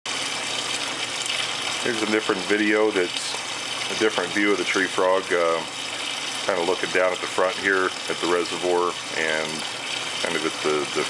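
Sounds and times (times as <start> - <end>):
water splashing into reservoir: 0.1 - 11.0.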